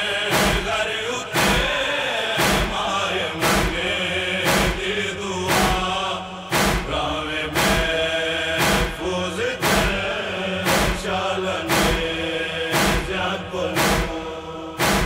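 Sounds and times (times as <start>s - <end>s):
chanted lament: 0.0s - 15.0s
sharp beat: 0.3s - 15.0s.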